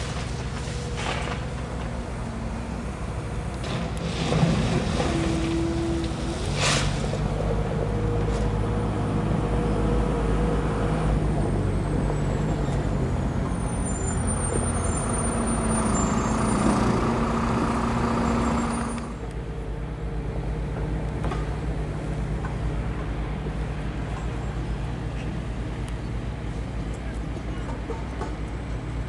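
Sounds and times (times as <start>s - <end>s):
vehicle engine running: 15.5s - 29.0s.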